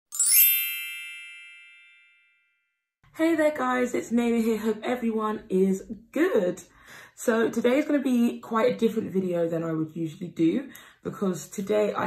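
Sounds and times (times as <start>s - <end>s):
rising sparkle shimmer: 0.1s - 2.2s
bright chime ringing: 0.1s - 2.8s.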